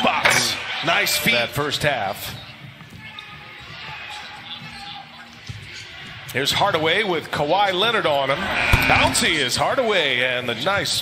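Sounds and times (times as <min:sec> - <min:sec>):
faint background music: 0:00.0 - 0:11.0
voices echoing in a hall: 0:00.0 - 0:11.0.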